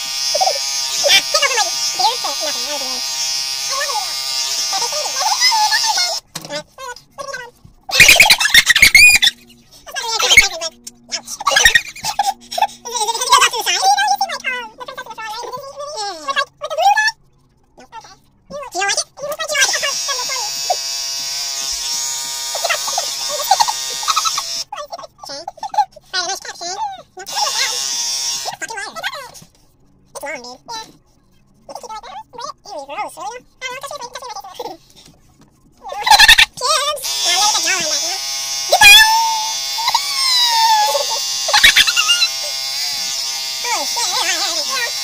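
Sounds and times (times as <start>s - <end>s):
electric beard trimmer buzzing: 0.0s - 6.2s, 19.6s - 24.7s, 27.3s - 28.6s, 37.0s - 45.0s
high-pitched sped-up voices: 4.8s - 17.2s
short high-pitched laughs: 7.9s - 9.5s.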